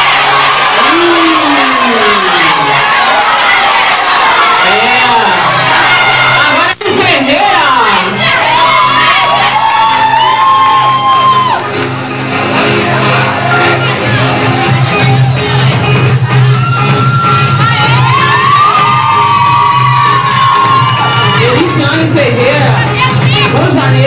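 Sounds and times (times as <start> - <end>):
crowd cheering and whooping: 0.0 - 6.8, 7.6 - 23.6.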